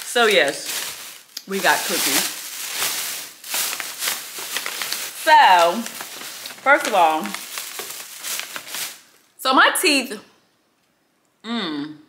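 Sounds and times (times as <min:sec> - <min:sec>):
packaging and shopping bag rustling: 0:00.0 - 0:09.4.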